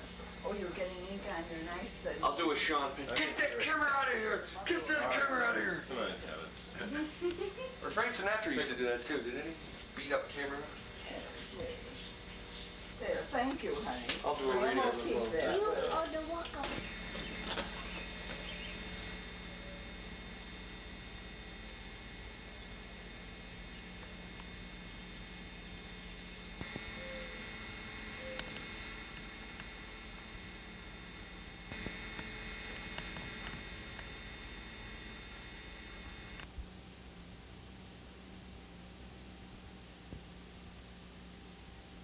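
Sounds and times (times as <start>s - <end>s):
electrical hum: 0.0s - 42.0s
tape hiss: 0.0s - 42.0s.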